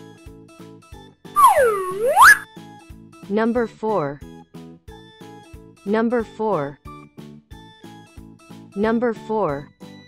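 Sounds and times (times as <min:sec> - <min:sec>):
cartoon swooping sound effect: 0:01.4 - 0:02.4
children's background music: 0:01.4 - 0:02.4.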